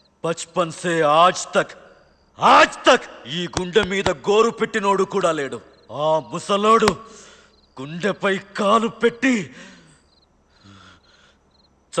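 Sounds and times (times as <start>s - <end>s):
crickets chirping: 0.0s - 12.0s.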